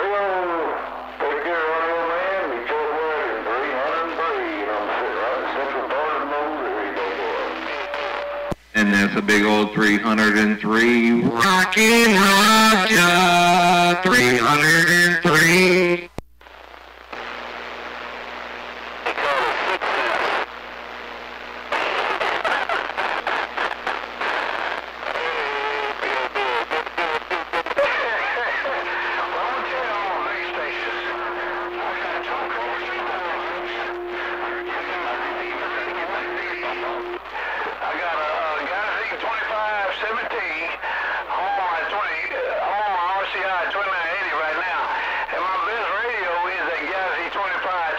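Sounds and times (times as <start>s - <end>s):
garbled radio voices: 0.0s - 16.1s, 18.6s - 21.0s, 21.7s - 47.9s
radio hum: 0.0s - 47.9s
radio static bursts: 0.0s - 47.9s.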